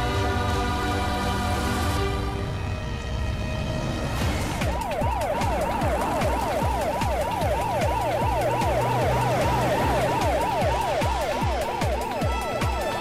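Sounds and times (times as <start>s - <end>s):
music with heavy fast beat: 4.6s - 13.0s
police siren yelping: 4.6s - 13.0s.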